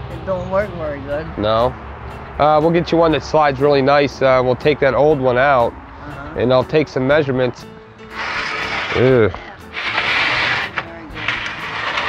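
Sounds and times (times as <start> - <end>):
sliding door scraping on track: 8.0 - 12.0.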